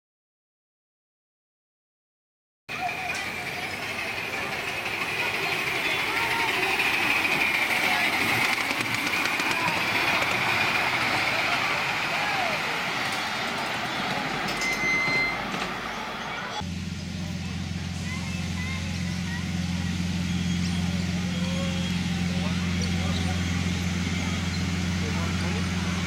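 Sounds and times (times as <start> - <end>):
miniature train rolling on track: 2.7 - 26.0
people's voices: 2.7 - 26.0.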